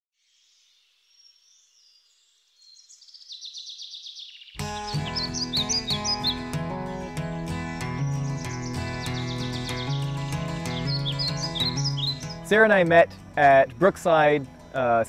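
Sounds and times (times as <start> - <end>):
bird chirps: 0.2 - 13.2
music: 4.6 - 15.0.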